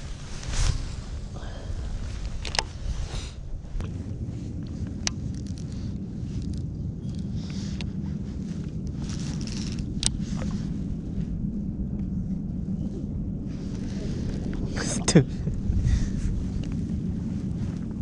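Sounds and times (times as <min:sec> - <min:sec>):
low rumble: 0:00.0 - 0:18.0.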